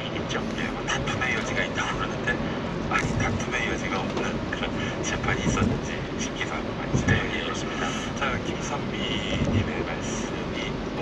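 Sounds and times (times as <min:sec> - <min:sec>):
indistinct talk: 0:00.0 - 0:11.0
road and engine rumble: 0:00.0 - 0:11.0.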